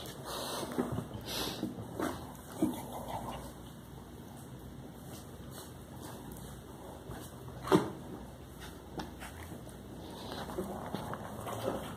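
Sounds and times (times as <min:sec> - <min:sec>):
rustling of fur and bedding: 0:04.2 - 0:11.9.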